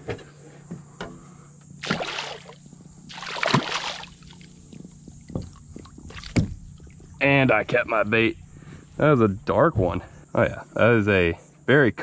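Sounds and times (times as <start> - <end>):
fish splashing in water: 1.8 - 4.6, 5.4 - 7.0.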